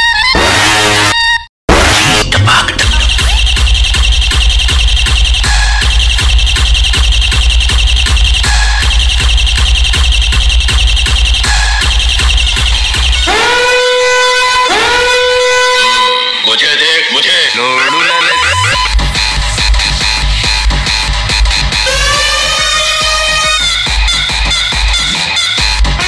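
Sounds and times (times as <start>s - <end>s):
police horn sample: 0.0s - 2.2s, 11.9s - 16.4s, 17.8s - 18.9s, 21.8s - 26.0s
dance remix with heavy bass: 1.7s - 13.8s, 16.2s - 26.0s.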